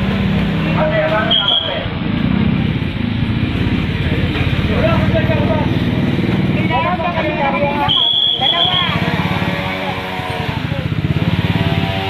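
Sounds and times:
vehicle engine running: 0.0s - 12.0s
crowd chatter: 0.5s - 12.0s.

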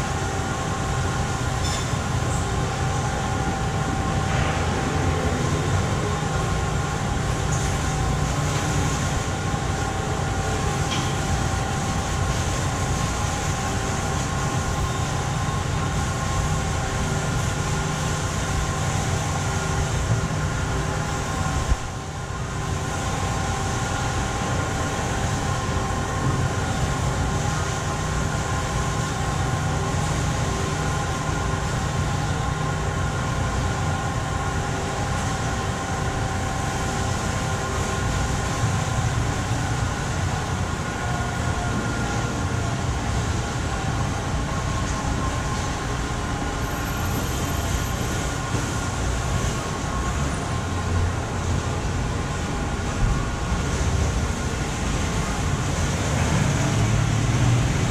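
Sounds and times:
machinery drone: 0.0s - 57.9s.

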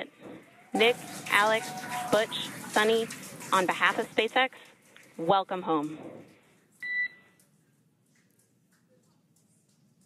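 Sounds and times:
electronic beep: 6.8s - 7.2s.

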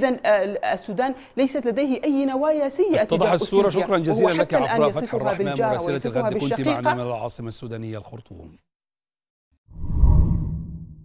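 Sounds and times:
deep whoosh: 9.7s - 11.0s.

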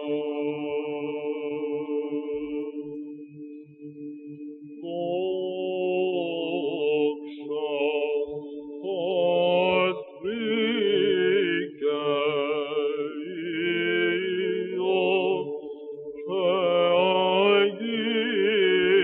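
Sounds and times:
solo chanting voice: 0.0s - 19.0s.

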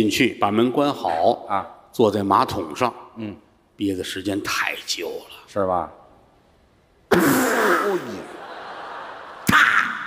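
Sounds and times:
mouth fart noise: 7.1s - 8.2s
audience laughing: 7.9s - 10.0s.

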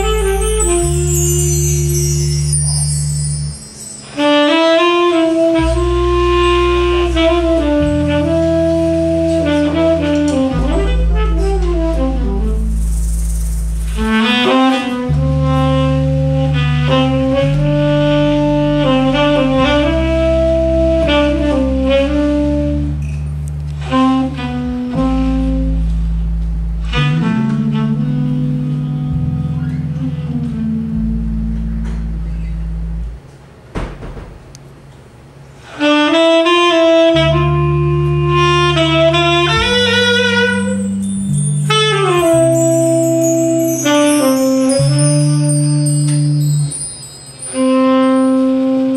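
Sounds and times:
saxophone long held notes: 0.0s - 13.0s, 13.9s - 33.2s, 35.6s - 48.9s
drum kit: 0.0s - 29.2s
electric bass: 0.0s - 48.9s.

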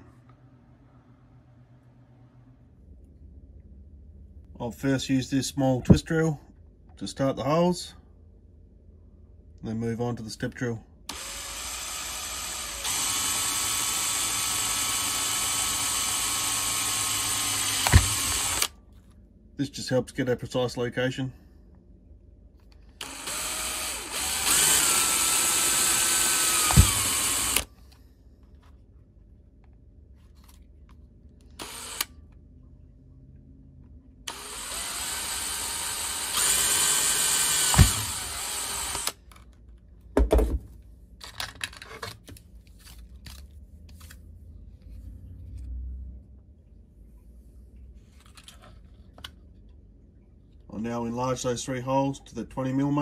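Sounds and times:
cordless drill motor whine: 11.1s - 18.7s, 23.0s - 27.7s, 31.6s - 32.1s, 34.3s - 39.2s.

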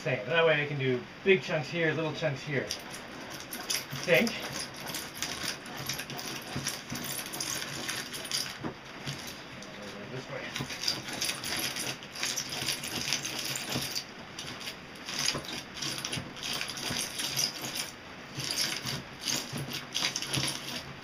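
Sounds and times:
grinder crackling styrofoam: 2.2s - 21.0s.

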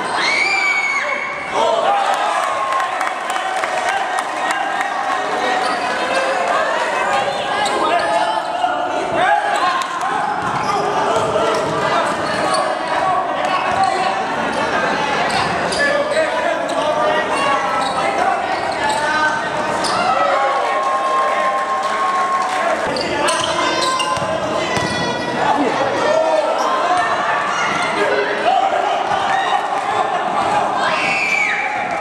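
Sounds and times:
people shouting and talking: 0.0s - 32.0s
basketball bouncing on court: 24.0s - 25.4s.

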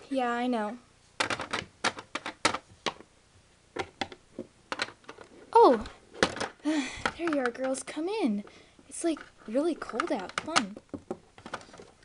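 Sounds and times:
plastic toys clicking on hard floor: 1.2s - 3.0s, 3.8s - 7.9s, 9.0s - 12.0s.

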